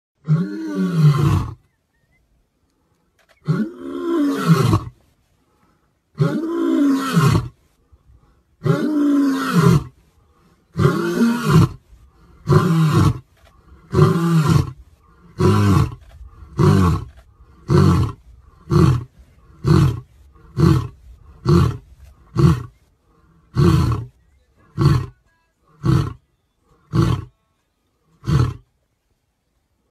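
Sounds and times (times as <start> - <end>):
lion roaring: 6.2 - 7.6, 8.6 - 10.0, 10.7 - 25.2, 26.8 - 27.3
lion grunting: 8.6 - 27.3.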